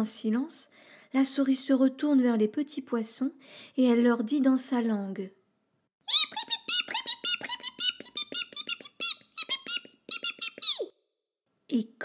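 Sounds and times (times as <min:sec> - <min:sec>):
high squeaky chirps: 0:06.1 - 0:11.0.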